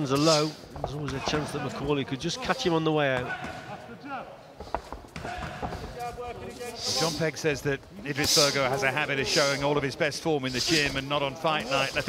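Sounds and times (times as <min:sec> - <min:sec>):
feet on ring canvas: 0:04.6 - 0:07.2.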